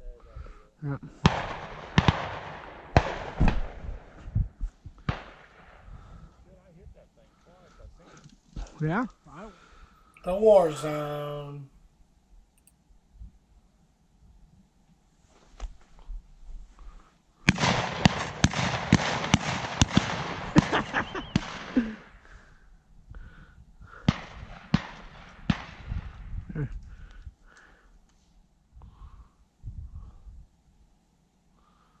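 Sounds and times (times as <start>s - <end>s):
shotguns firing: 1.2s - 4.2s, 5.0s - 6.1s, 17.5s - 21.9s, 24.1s - 26.2s.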